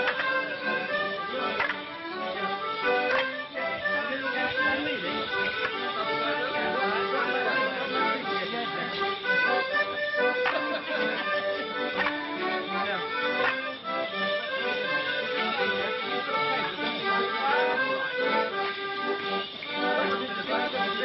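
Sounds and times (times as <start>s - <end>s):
accordion and fiddle dance tune: 0.0s - 21.0s.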